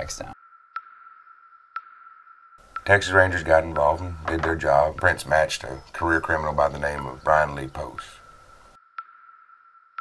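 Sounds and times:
sharp ticks: 0:00.7 - 0:10.0
faint background noise: 0:02.6 - 0:08.8.

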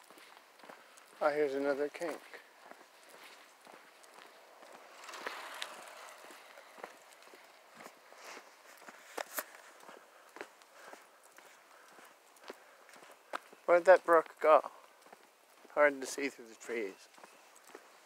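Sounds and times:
footsteps on asphalt: 0:00.0 - 0:18.0.

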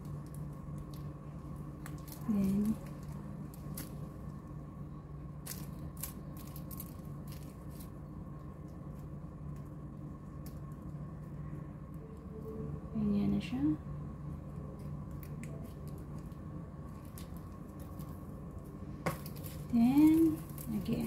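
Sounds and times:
plastic bags crinkling: 0:00.0 - 0:04.4, 0:05.4 - 0:08.0, 0:15.1 - 0:21.0
low hum: 0:00.0 - 0:21.0.

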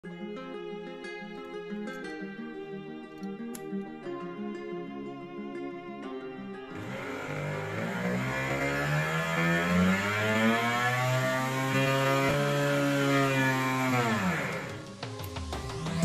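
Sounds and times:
rotary drill motor whine: 0:06.7 - 0:14.9.

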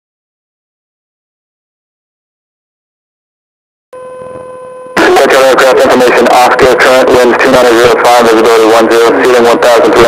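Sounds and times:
steady electronic hum: 0:04.0 - 0:10.0
voice over aircraft radio: 0:05.0 - 0:10.0.

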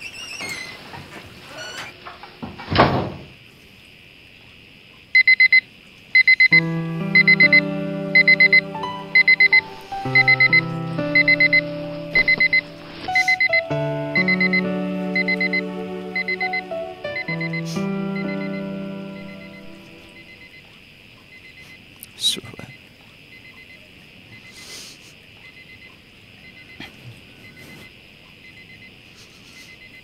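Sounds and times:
alarm clock beeping: 0:05.2 - 0:05.6, 0:06.2 - 0:20.6
soft music of sustained chords: 0:06.5 - 0:20.6.

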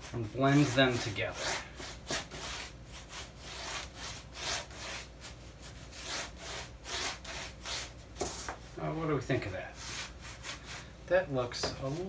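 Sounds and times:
paintbrush scrubbing textured board: 0:00.0 - 0:08.6.

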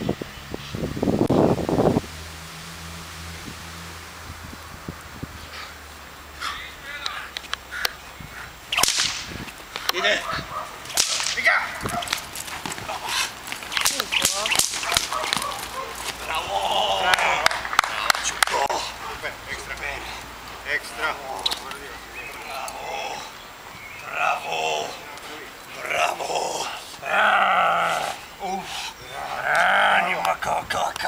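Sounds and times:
whip cracks: 0:08.7 - 0:10.1, 0:10.8 - 0:16.1.

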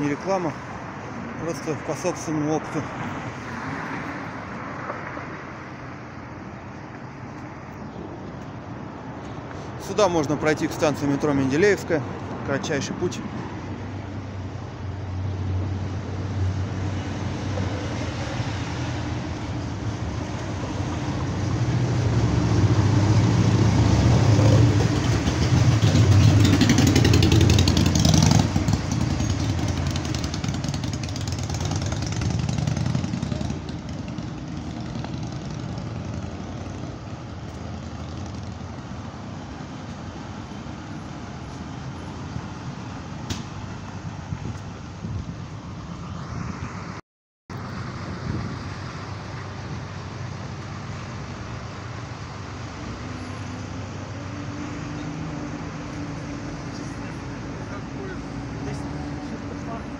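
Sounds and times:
steady traffic hum: 0:00.0 - 0:59.9
heavy vehicle engine passing: 0:09.5 - 0:45.2.

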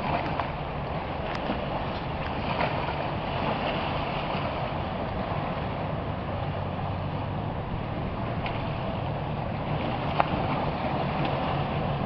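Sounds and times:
water lapping at shore: 0:00.0 - 0:12.0
wind buffeting microphone: 0:00.0 - 0:12.0.

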